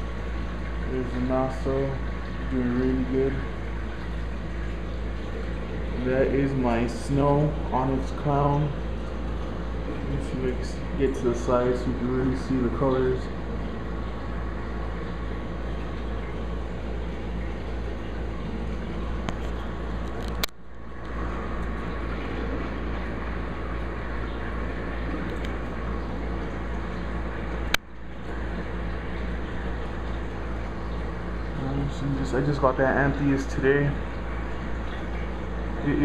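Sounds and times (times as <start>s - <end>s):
aquarium pumps and water flow: 0.0s - 36.0s
low hum: 0.0s - 36.0s.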